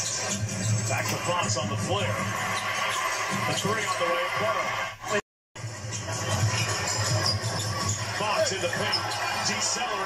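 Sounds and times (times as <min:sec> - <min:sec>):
commentator talking: 0:08.2 - 0:10.0.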